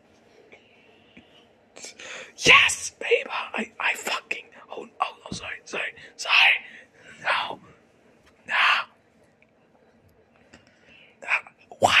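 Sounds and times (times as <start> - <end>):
person breathy whispering: 0.6 - 7.8, 8.5 - 9.0, 10.8 - 12.0.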